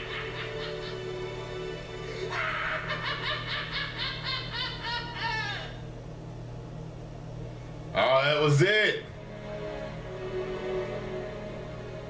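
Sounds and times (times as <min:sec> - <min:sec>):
man laughing rapidly: 0:00.0 - 0:01.3, 0:02.2 - 0:05.8
low musical drone: 0:00.0 - 0:06.2, 0:07.3 - 0:12.0.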